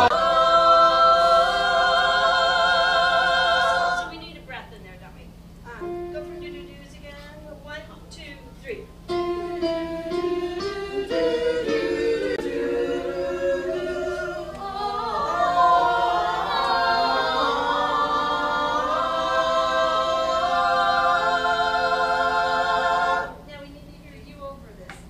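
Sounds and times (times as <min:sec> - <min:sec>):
cast singing in harmony: 0:00.0 - 0:04.2, 0:09.1 - 0:23.5.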